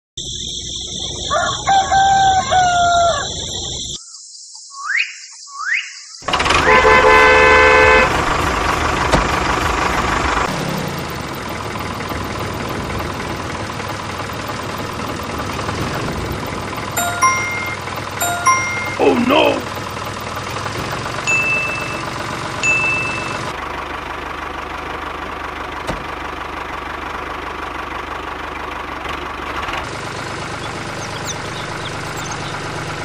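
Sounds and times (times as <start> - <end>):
rooster crowing: 1.2 - 3.6
horn blast: 6.5 - 8.2
toy tractor engine running: 11.3 - 33.0
short beeps: 17.0 - 19.6, 21.3 - 23.5.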